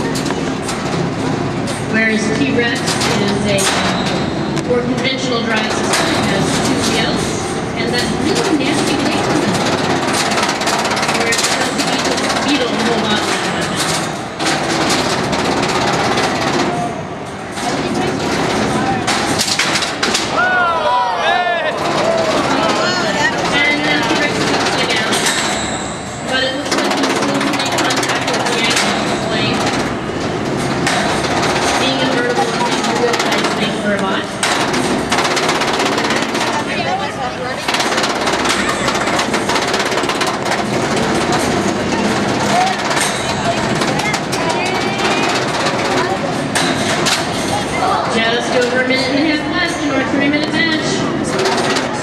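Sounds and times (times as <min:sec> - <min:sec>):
robots clacking and knocking: 0:00.0 - 0:20.4, 0:21.7 - 0:52.0
crowd voices and shouting: 0:00.0 - 0:52.0.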